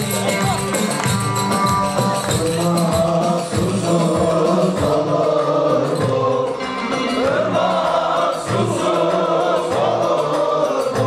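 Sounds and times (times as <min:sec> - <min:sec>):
men singing folk song in unison: 0:02.2 - 0:11.0.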